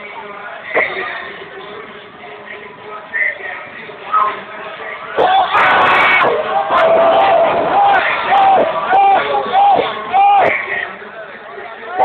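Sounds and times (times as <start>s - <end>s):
crowd shouting and cheering: 2.6s - 12.0s
high-pitched yells: 5.2s - 10.6s.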